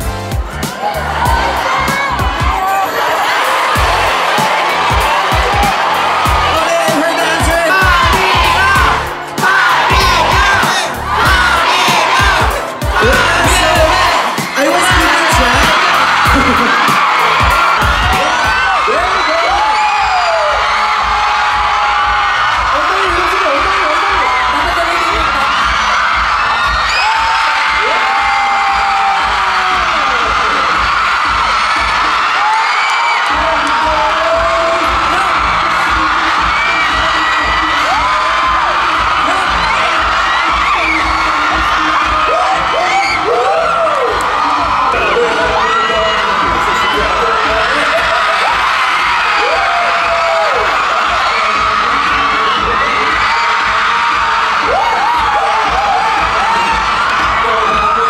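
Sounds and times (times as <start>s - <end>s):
crowd screaming and cheering: 0.0s - 58.0s
dance music with pounding beat: 0.0s - 58.0s.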